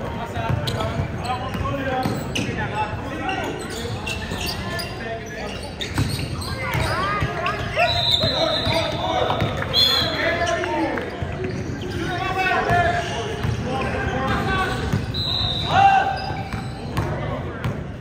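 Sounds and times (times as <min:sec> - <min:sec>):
sneakers squeaking: 0:00.1 - 0:18.0.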